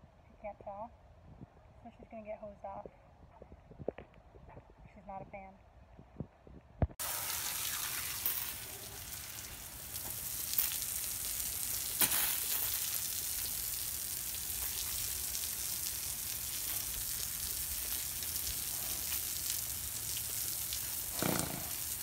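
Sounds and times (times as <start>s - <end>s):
hose spraying water: 7.0s - 22.0s
water splashing on floor: 7.0s - 22.0s.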